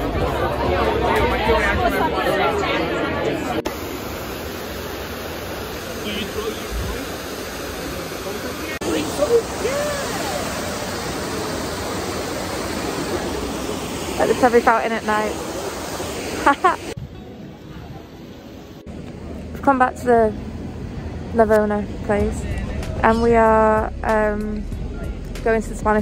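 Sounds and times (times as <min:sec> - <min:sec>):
scattered voices: 0:00.0 - 0:03.7, 0:21.4 - 0:26.0
fountain water cascading: 0:00.0 - 0:17.0
crowd chatter: 0:00.0 - 0:26.0.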